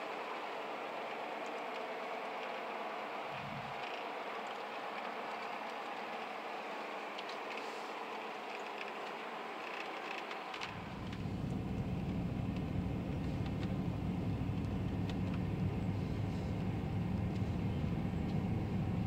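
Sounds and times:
car road noise from cabin: 0:00.0 - 0:19.0
deep rumble: 0:03.3 - 0:03.8, 0:10.7 - 0:19.0.

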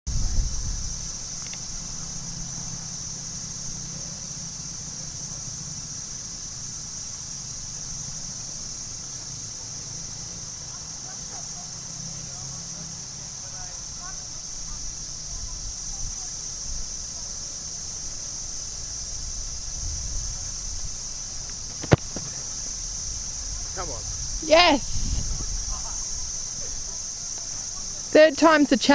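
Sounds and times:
distant traffic rumble: 0:00.1 - 0:28.9
high-pitched hiss: 0:00.1 - 0:28.9
boot kicking a football: 0:21.7 - 0:22.4.

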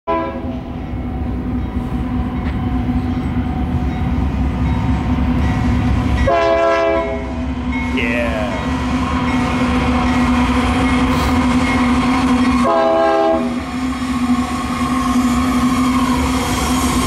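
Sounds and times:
diesel locomotive rumble: 0:00.2 - 0:17.0
multi-note air horn: 0:06.3 - 0:07.3, 0:12.6 - 0:13.6.

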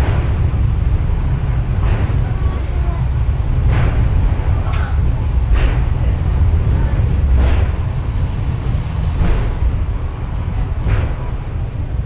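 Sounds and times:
cable car low rumble: 0:00.0 - 0:12.0.

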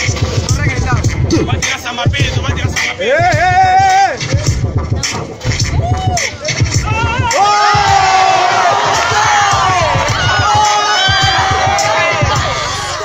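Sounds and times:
music beat: 0:00.0 - 0:13.0
crowd cheering and shouting: 0:03.0 - 0:04.6, 0:05.4 - 0:13.0.

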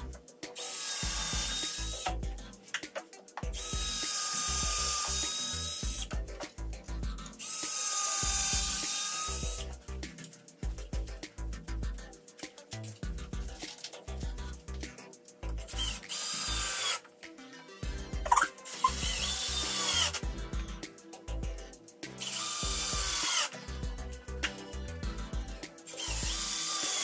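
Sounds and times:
background music: 0:00.0 - 0:27.0
power drill whining: 0:00.6 - 0:02.0, 0:03.6 - 0:06.1, 0:07.4 - 0:09.6, 0:15.8 - 0:17.0, 0:18.6 - 0:20.2, 0:22.2 - 0:23.5, 0:25.9 - 0:27.0.

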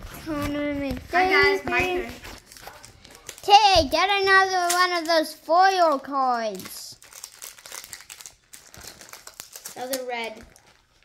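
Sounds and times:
wrapper crinkling and tearing: 0:02.1 - 0:03.6, 0:05.9 - 0:11.0.

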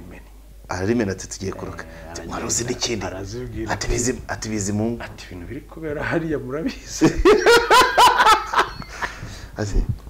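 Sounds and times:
men laughing: 0:06.0 - 0:09.4.

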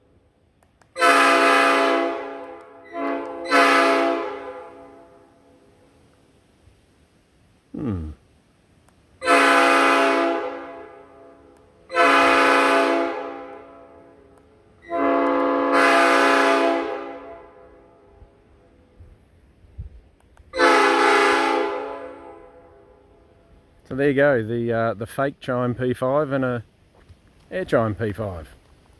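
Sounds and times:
air horn blasts: 0:01.0 - 0:05.4, 0:09.2 - 0:18.1, 0:20.6 - 0:23.0.

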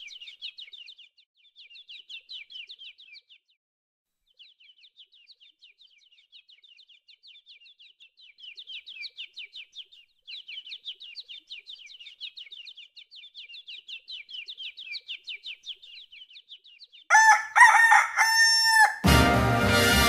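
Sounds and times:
small bird chirping: 0:00.0 - 0:03.6, 0:04.2 - 0:19.0
rooster crowing: 0:17.1 - 0:19.1
orchestral music: 0:19.0 - 0:20.0.

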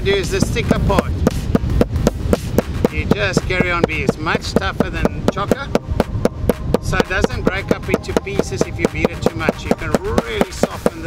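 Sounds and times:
mallet pounding on cutting board: 0:00.3 - 0:11.0.

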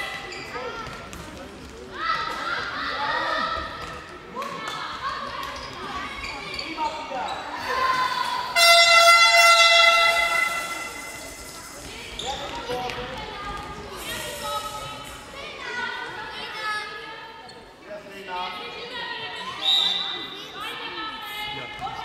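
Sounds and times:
electric horn buzzing: 0:08.6 - 0:10.7.

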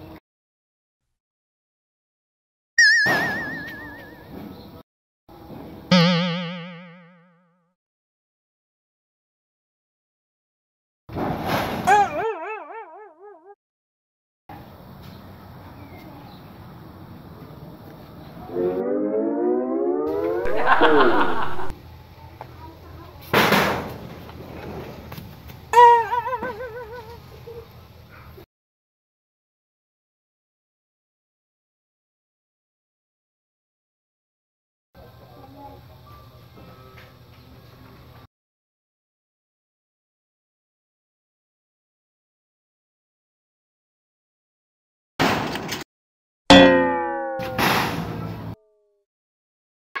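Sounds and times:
cartoon boing hit: 0:02.8 - 0:04.3, 0:05.9 - 0:07.4, 0:46.5 - 0:48.9
loud warbling tone: 0:02.8 - 0:04.3, 0:05.9 - 0:07.4, 0:18.5 - 0:21.7, 0:46.5 - 0:48.6.

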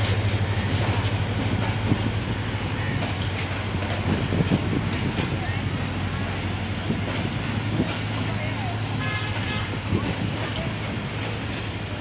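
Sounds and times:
diesel locomotive drone: 0:00.0 - 0:12.0
train horn: 0:08.9 - 0:10.6.

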